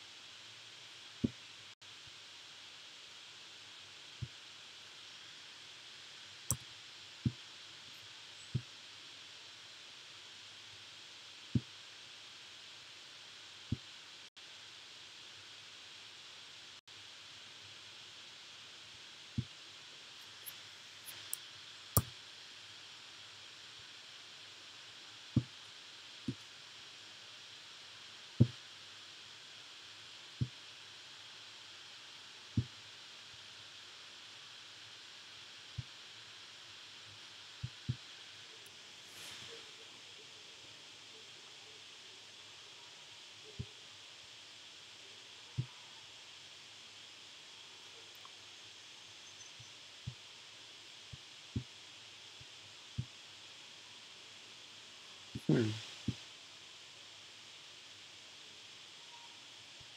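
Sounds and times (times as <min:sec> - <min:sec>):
faint microphone hiss: 0:00.0 - 0:59.9.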